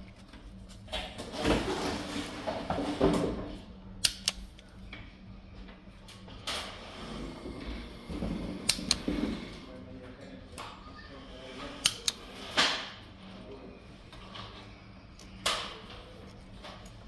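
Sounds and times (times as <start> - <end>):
sharp clicks: 4.0 - 4.6, 11.8 - 12.2.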